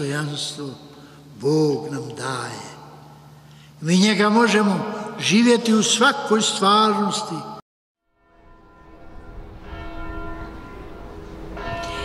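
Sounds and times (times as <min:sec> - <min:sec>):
church bells ringing: 0:08.1 - 0:12.0.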